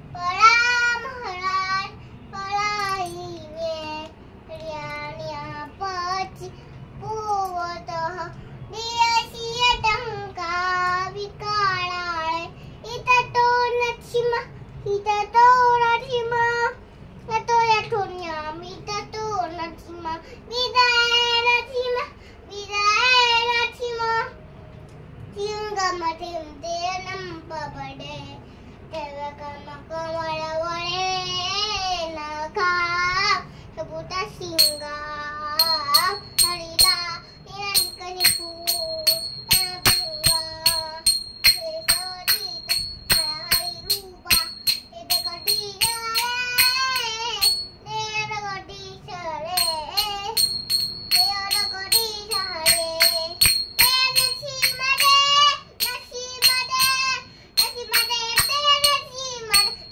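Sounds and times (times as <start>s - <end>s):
girl singing a chant: 0.0s - 24.4s, 25.3s - 59.9s.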